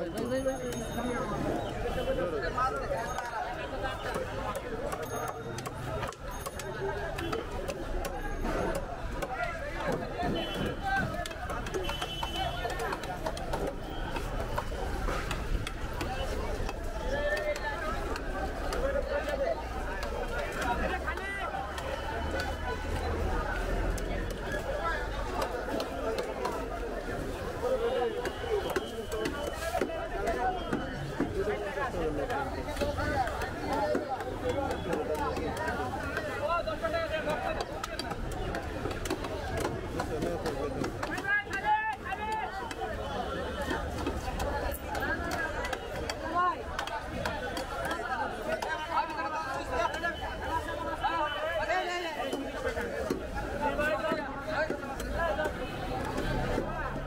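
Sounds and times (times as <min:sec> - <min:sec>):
voices chattering: 0:00.0 - 0:57.0.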